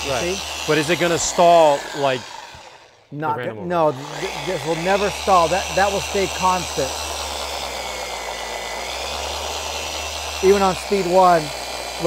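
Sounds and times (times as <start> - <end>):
orbital polisher motor whining: 0.0 - 12.0.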